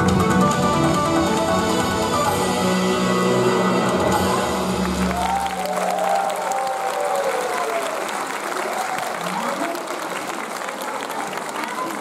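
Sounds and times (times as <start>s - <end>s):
audience applauding: 4.6s - 12.0s.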